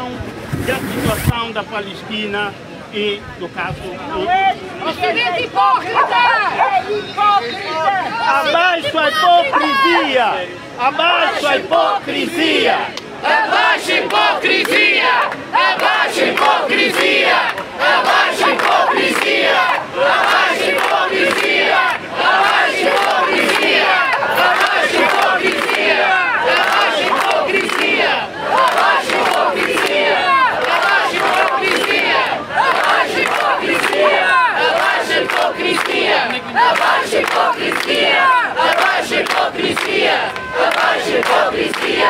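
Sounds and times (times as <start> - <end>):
crowd chanting: 4.0 - 42.0.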